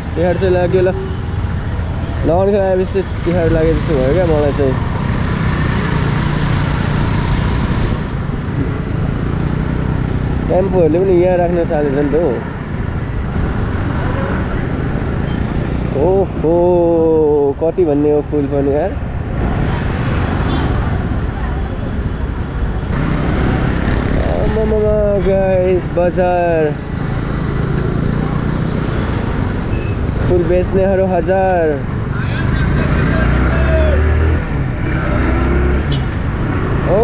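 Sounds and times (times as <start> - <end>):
street traffic noise: 0.0 - 37.0
wind and road noise: 0.0 - 37.0.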